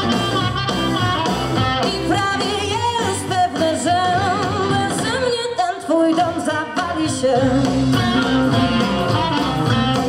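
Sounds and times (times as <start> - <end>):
harmonica fill: 0.0 - 2.8, 7.6 - 10.0
blues band playing: 0.0 - 10.0
person singing: 1.8 - 10.0.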